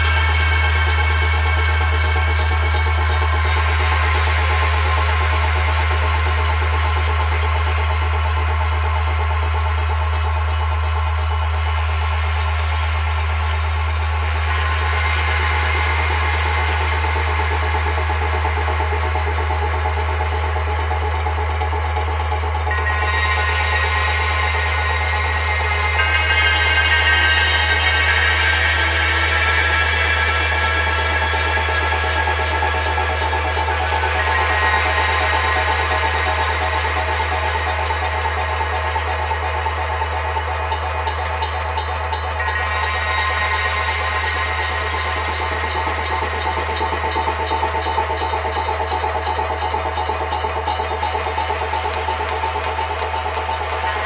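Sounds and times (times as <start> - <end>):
deep drone: 0.0 - 54.0
fast percussion pulse: 0.0 - 54.0
ringing metal percussion tones: 0.0 - 54.0.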